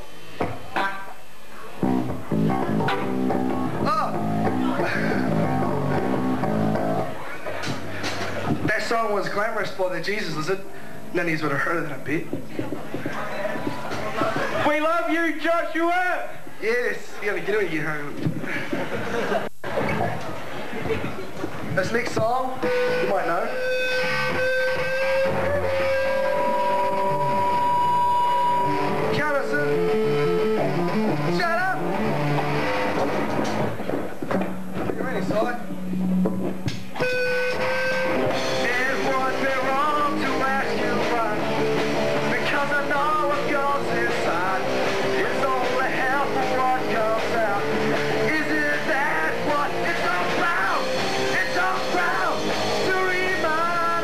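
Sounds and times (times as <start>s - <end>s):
live rock band playing: 1.8s - 8.7s, 22.6s - 34.9s, 35.8s - 54.0s
person singing: 38.4s - 41.6s, 42.2s - 54.0s.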